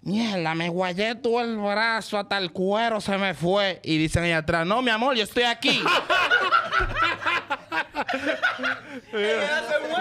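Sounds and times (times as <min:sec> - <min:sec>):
group of people laughing: 0:05.6 - 0:10.0.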